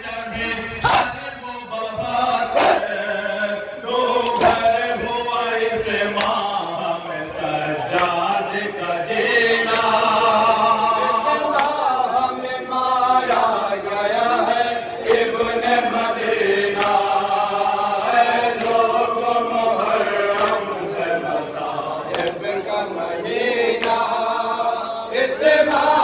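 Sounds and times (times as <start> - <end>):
men chanting through loudspeakers: 0.0 - 26.0
chest-beating slaps: 2.6 - 2.9, 4.2 - 4.7, 6.1 - 6.4, 7.9 - 8.2, 11.5 - 11.8, 22.1 - 22.5, 23.7 - 24.2.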